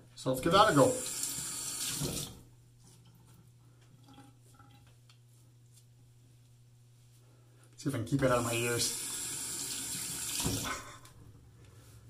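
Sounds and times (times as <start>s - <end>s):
tap water running into sink: 0.9s - 2.4s, 8.9s - 10.8s.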